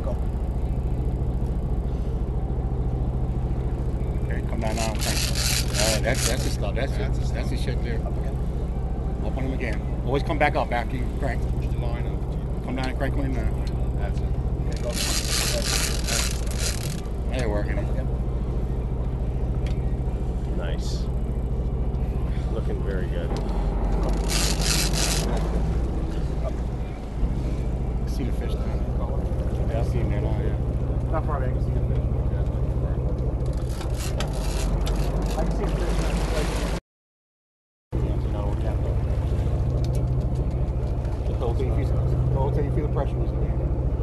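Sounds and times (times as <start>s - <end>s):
boat engine drone: 0.0s - 36.8s, 38.0s - 44.0s
faint voices: 3.6s - 36.7s
fishing reel scraping whir: 4.6s - 6.7s, 14.7s - 17.3s, 24.0s - 25.5s, 33.5s - 35.4s.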